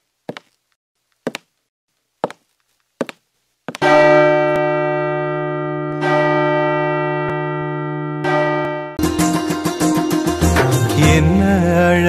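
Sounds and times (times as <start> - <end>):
church bell ringing: 3.8 - 9.1.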